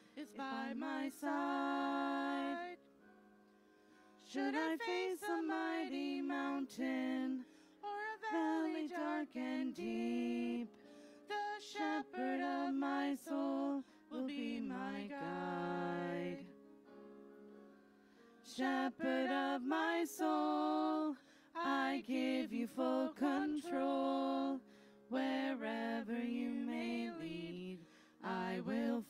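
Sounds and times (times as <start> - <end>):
person singing a hymn: 0.0 - 2.9, 4.2 - 16.6, 18.4 - 29.0.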